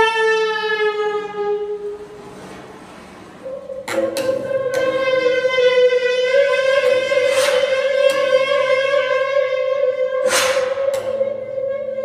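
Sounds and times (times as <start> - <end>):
reedy instrumental note: 3.4 - 12.0.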